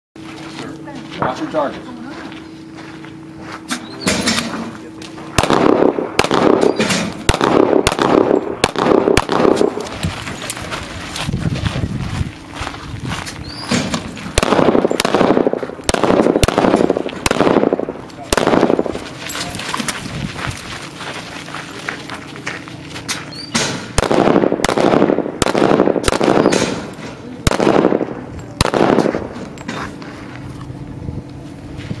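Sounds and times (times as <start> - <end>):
rough scuffing noise: 0.2 - 5.4, 9.4 - 14.9, 17.9 - 24.0, 29.0 - 32.0
pistol shots: 5.4 - 9.9, 13.7 - 19.0, 23.4 - 29.4.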